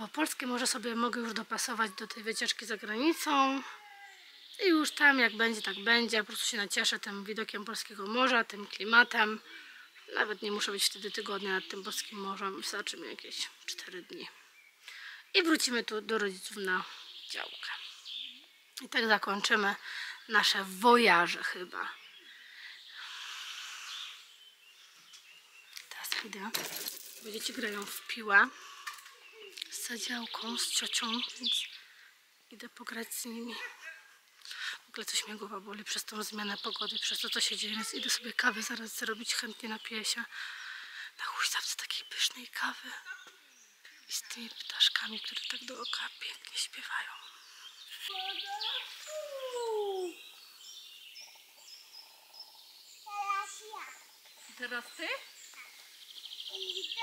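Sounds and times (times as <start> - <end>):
distant birds chirping: 0.0 - 57.0
soft hiss: 22.0 - 35.9, 48.8 - 57.0
person's voice falling pitch: 49.1 - 50.2.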